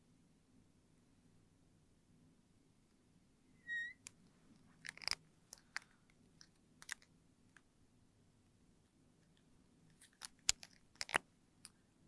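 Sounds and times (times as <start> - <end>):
marker squeaking on glass: 3.6 - 4.1
plastic marker caps clicking: 4.8 - 7.1, 10.0 - 11.8.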